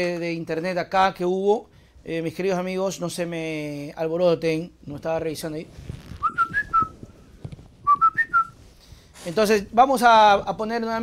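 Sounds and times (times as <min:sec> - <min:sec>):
person whistling a tune: 0:06.2 - 0:07.0, 0:07.9 - 0:08.6.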